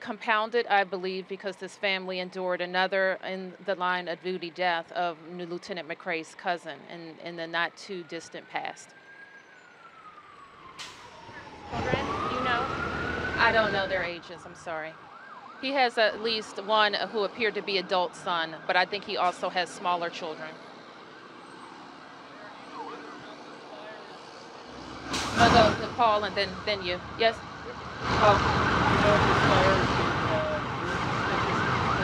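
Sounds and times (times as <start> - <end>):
street traffic noise: 0.0 - 32.0
faint siren wailing: 0.6 - 32.0.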